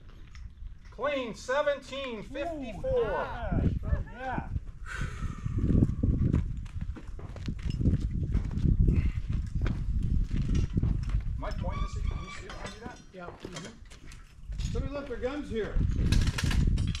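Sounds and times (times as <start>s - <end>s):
people talking indistinctly: 1.0s - 5.5s.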